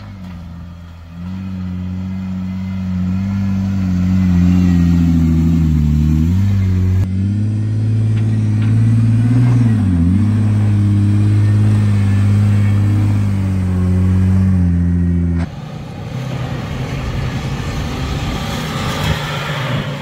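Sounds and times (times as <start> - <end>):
engine pulling on dirt trail: 0.0 - 20.0
vehicle rumble from inside: 0.0 - 20.0.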